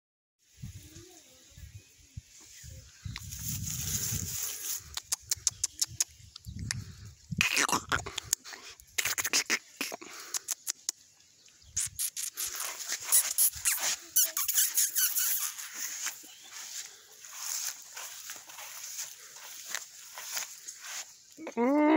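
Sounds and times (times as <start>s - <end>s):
grass rustling with footsteps: 0.4s - 6.3s, 11.8s - 21.6s
puppy squeak: 12.0s - 15.7s.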